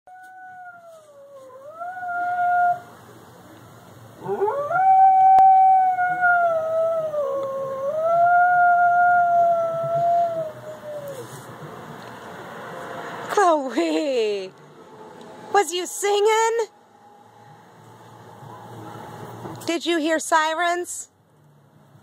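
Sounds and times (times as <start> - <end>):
dog howling: 0.1 - 2.9, 4.2 - 11.2
sirens: 4.2 - 11.3, 15.5 - 19.5.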